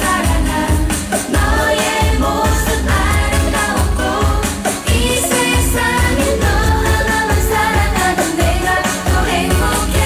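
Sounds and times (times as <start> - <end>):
dance backing track with bass drum: 0.0 - 10.0
female group singing into microphones: 0.0 - 10.0.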